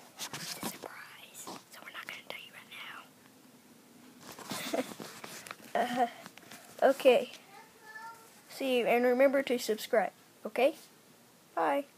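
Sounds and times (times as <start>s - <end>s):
child whispering: 0.7s - 3.1s, 7.4s - 8.4s.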